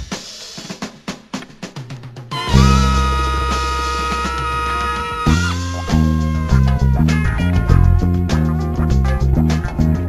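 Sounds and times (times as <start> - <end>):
drum kit fill: 0.0 - 10.0
band playing: 2.3 - 8.8.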